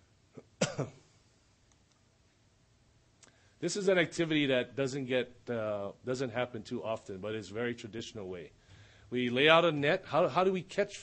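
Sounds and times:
man clearing his throat: 0:00.4 - 0:01.1.

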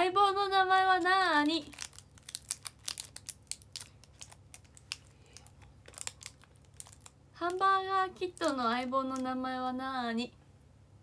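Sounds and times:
snack wrapper crackling: 0:00.9 - 0:09.3.

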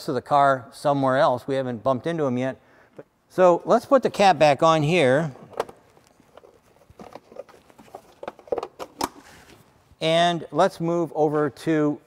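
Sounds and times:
plastic cover rattling and knocking: 0:05.5 - 0:09.2.

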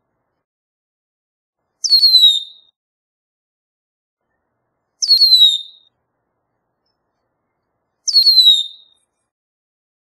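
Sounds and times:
bird whistled call: 0:01.8 - 0:02.7, 0:05.0 - 0:05.9, 0:08.1 - 0:09.0.

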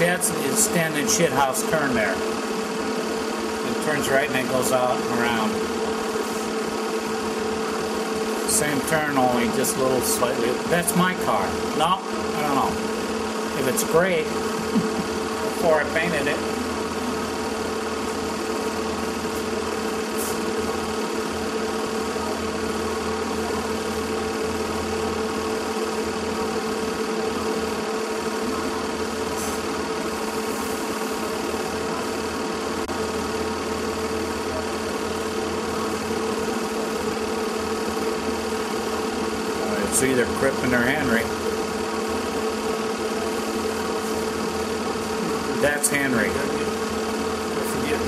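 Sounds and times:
machine humming and whirring: 0:00.0 - 0:48.0.

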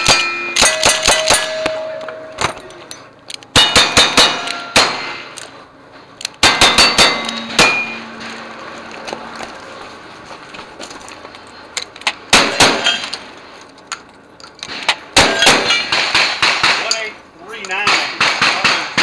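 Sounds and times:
steel plate targets ringing: 0:00.0 - 0:05.4, 0:06.4 - 0:08.7
shotgun shots: 0:15.2 - 0:16.9.

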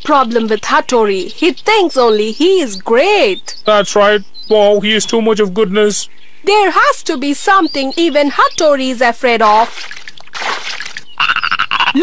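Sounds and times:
cartoon frog croak: 0:11.0 - 0:12.0
breathy laugh: 0:11.2 - 0:12.0.

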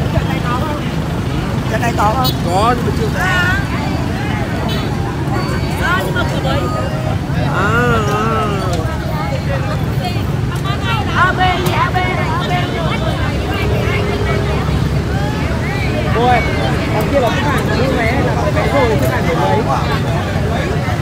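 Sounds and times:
crowd talking: 0:00.0 - 0:21.0.

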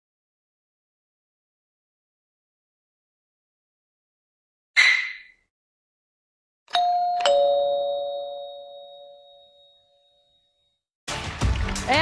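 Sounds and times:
two-note ding-dong chime: 0:06.7 - 0:10.4.

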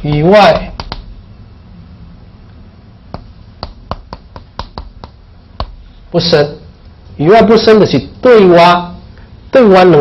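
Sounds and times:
chalk tapping on blackboard: 0:00.0 - 0:01.1, 0:03.1 - 0:05.8
faint low hum: 0:00.0 - 0:10.0.

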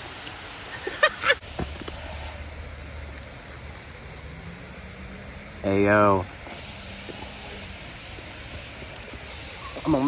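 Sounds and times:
small waterfall rushing: 0:00.0 - 0:10.0.

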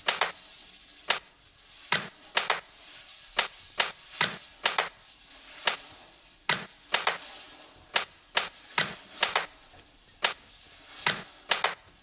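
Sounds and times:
sharp dry clicks: 0:00.0 - 0:00.4, 0:01.9 - 0:02.6, 0:03.4 - 0:04.9, 0:06.5 - 0:07.2, 0:08.0 - 0:09.5, 0:11.1 - 0:11.8.

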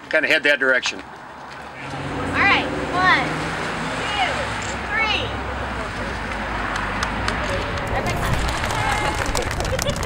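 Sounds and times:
traffic: 0:00.0 - 0:10.0
wind: 0:00.0 - 0:10.0
faint voices: 0:01.5 - 0:10.0.

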